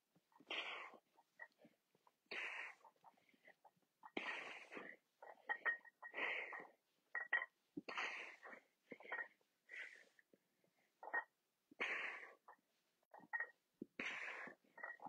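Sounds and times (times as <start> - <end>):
person breathing hard: 14.0 - 14.9.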